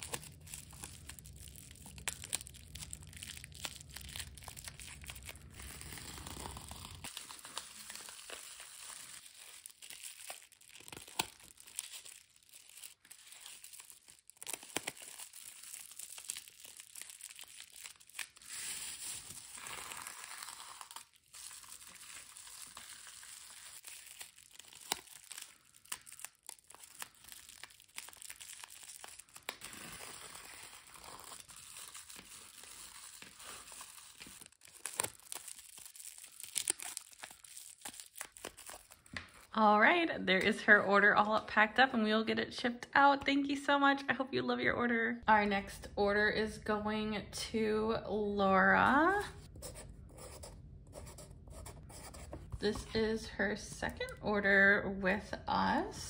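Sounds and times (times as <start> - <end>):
bubble wrap crinkling: 0.0 - 39.6.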